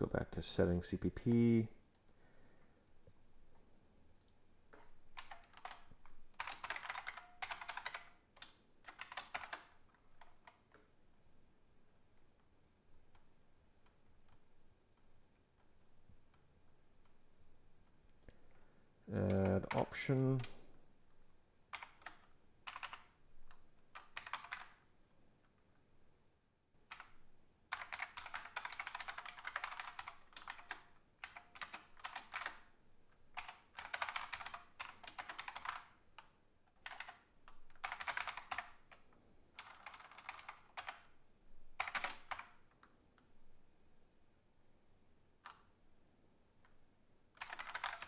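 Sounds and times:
computer keyboard typing: 4.1s - 10.9s, 19.1s - 20.6s, 21.7s - 24.9s, 26.9s - 32.7s, 33.3s - 39.0s, 39.6s - 41.2s, 41.8s - 42.9s, 47.4s - 48.0s.

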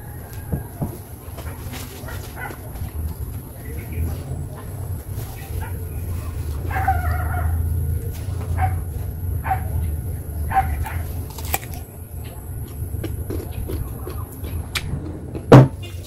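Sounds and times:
steady low rumble: 0.0s - 16.0s
dog barking: 2.1s - 2.6s, 6.7s - 7.6s, 8.5s - 9.8s, 10.5s - 11.1s.

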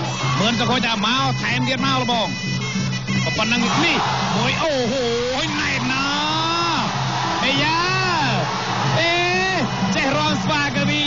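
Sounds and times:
reed oboe wavering melody: 0.0s - 7.8s
drums steady pattern: 0.0s - 11.0s.

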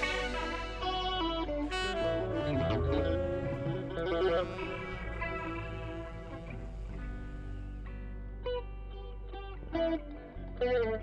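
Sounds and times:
electric guitar with effects: 0.0s - 11.0s
steady low bass: 0.0s - 11.0s.

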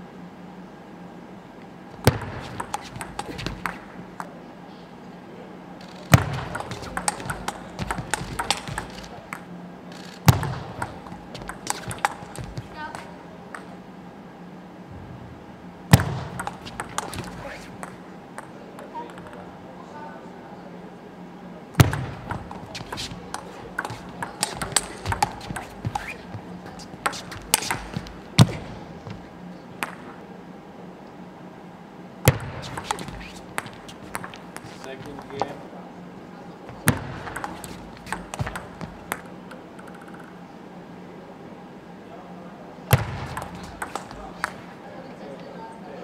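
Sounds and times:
table tennis ball clicking: 2.1s - 4.3s, 5.9s - 13.8s, 16.0s - 19.4s, 21.8s - 28.3s, 32.4s - 35.5s, 36.8s - 40.4s, 43.3s - 44.7s.

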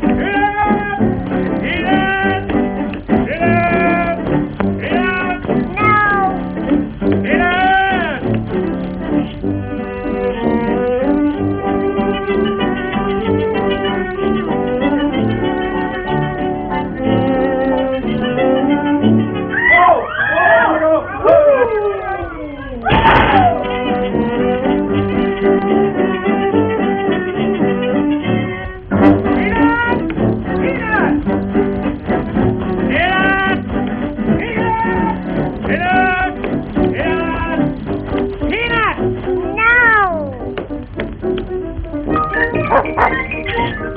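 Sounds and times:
cartoon orchestral music: 0.0s - 20.7s, 22.9s - 43.9s
meow-like gliding cries: 5.7s - 6.4s
cat-like meowing cry: 5.7s - 6.5s, 39.6s - 40.4s.

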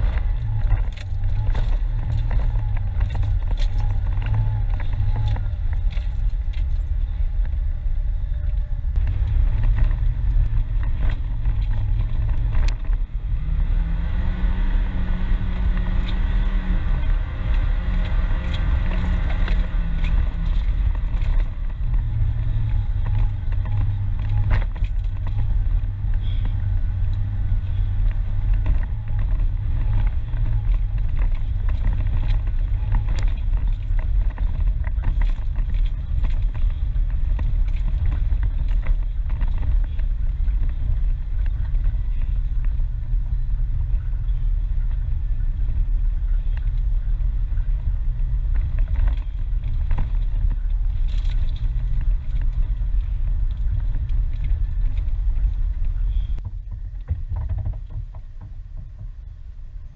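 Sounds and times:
off-road vehicle engine rumble: 0.0s - 59.9s.

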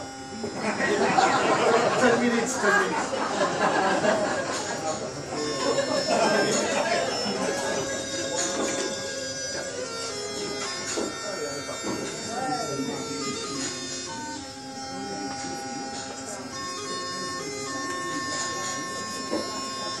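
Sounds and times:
murmur of voices: 0.0s - 20.0s
wind instrument playing long notes: 0.0s - 20.0s.

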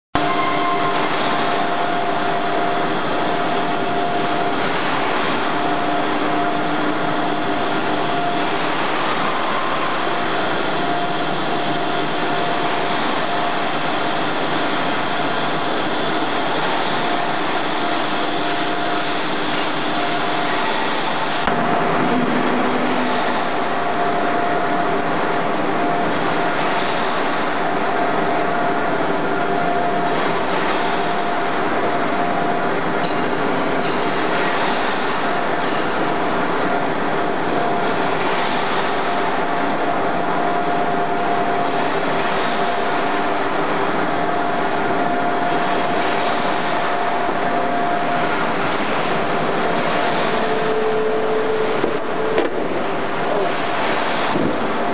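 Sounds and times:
machinery humming tones: 0.2s - 54.9s
mill machinery hissing: 0.2s - 54.9s.

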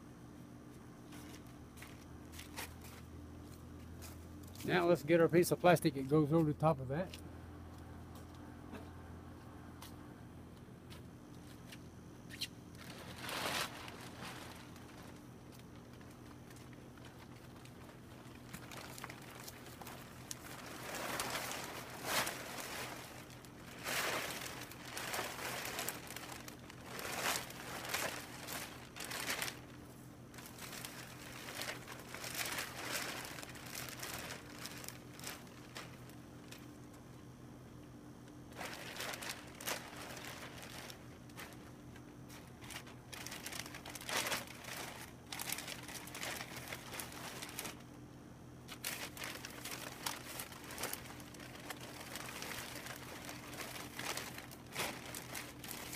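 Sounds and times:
plastic sheet crinkling: 12.8s - 36.7s, 38.5s - 47.9s, 48.6s - 55.9s.

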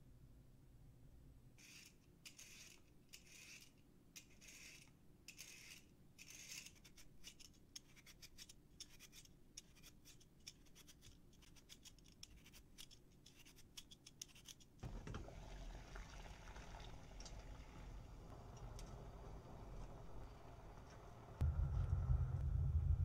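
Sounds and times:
peeler scraping carrot: 1.6s - 14.8s.

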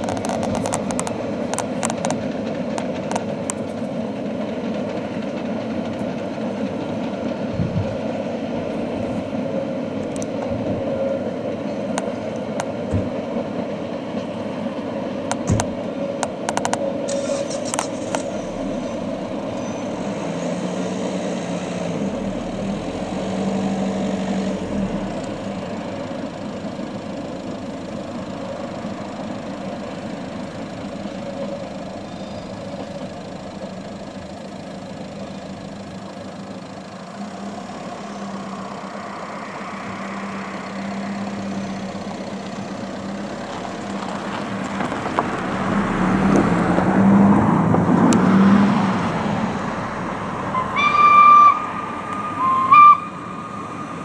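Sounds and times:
sharp clicks: 0.0s - 3.8s, 15.3s - 18.4s
distant steam locomotive rumble: 0.0s - 54.0s
low hum: 17.0s - 54.0s.

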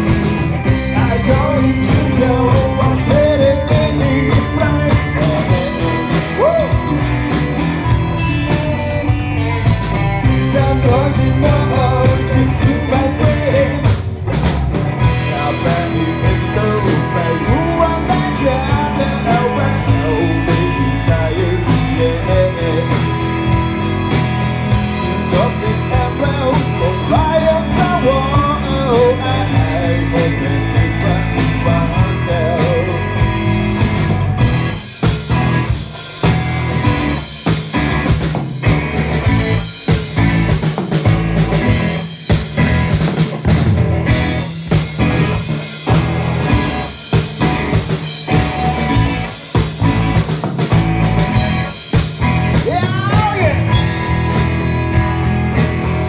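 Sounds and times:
live rock band playing: 0.0s - 56.0s
wavering lead guitar line: 0.0s - 56.0s.

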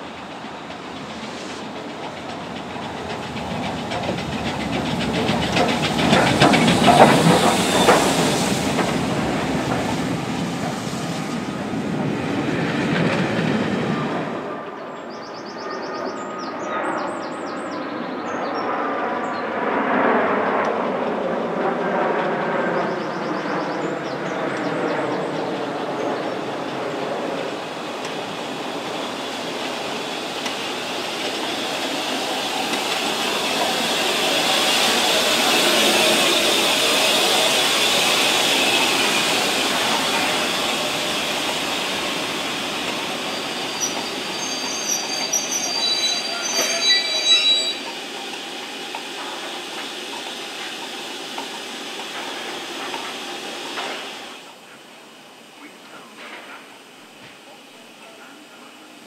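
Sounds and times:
steam train running noise: 0.0s - 15.2s, 21.0s - 59.0s
brake squeals of train wheels: 0.9s - 10.4s, 22.8s - 54.2s.

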